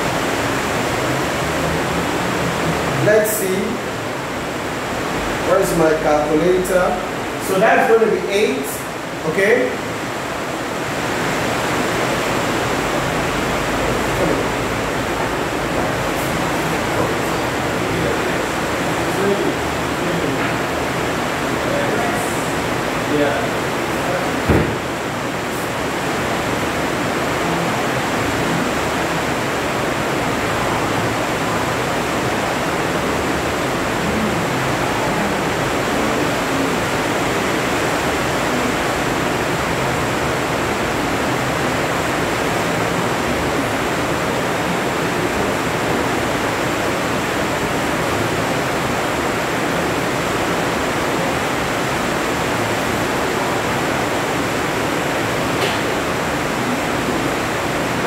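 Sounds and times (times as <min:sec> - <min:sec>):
steady rushing hiss: 0:00.0 - 0:58.0
speech: 0:03.0 - 0:03.8, 0:05.4 - 0:09.8, 0:19.0 - 0:20.5, 0:21.6 - 0:22.5, 0:23.1 - 0:24.4.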